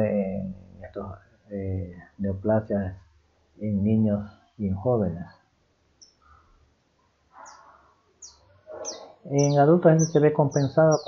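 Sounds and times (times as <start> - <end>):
bird chirping: 3.6 - 11.0.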